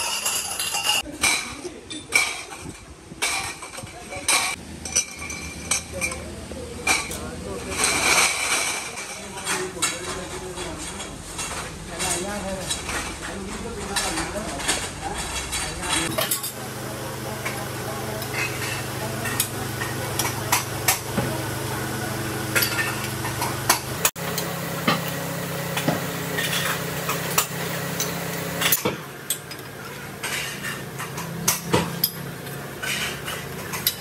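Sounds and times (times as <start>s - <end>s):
steel tubes clinking: 17.4s - 21.1s, 22.5s - 24.1s.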